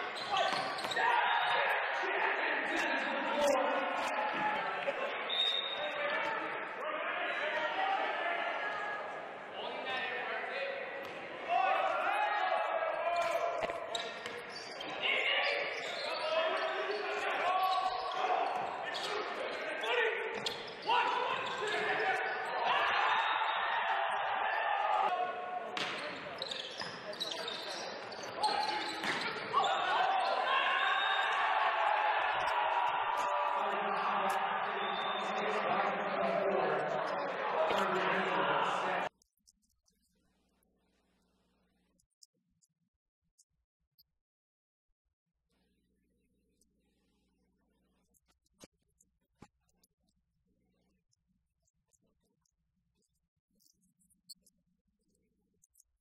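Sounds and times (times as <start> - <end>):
voices and shouts echoing: 0.0 - 39.1
ball struck and bouncing on court: 25.7 - 26.2, 29.0 - 29.4.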